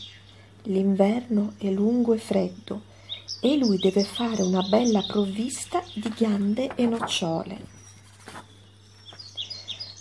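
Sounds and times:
low steady hum: 0.0s - 10.0s
small birds chirping: 0.0s - 10.0s.

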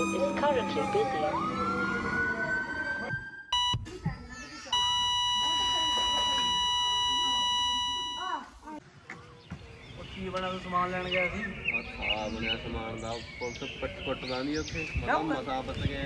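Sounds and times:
siren gliding upward: 0.0s - 3.8s
short electronic beeps: 3.5s - 3.9s, 4.7s - 8.4s
heart monitor flatline tone: 3.5s - 4.0s, 4.8s - 8.3s.

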